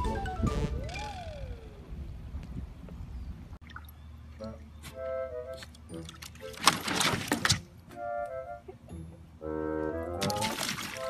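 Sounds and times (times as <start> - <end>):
whistle-like sliding note: 0.0 - 1.8
wind rumble on microphone: 0.0 - 3.6.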